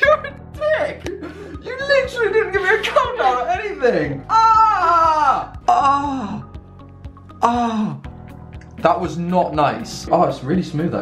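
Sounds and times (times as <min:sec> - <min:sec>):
background music with steady beat: 0:00.0 - 0:11.0
man moaning in pain: 0:04.3 - 0:06.7, 0:07.4 - 0:08.1.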